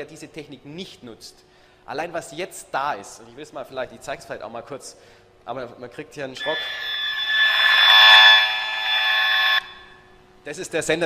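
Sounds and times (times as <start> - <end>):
harsh electronic buzz: 6.4 - 10.0.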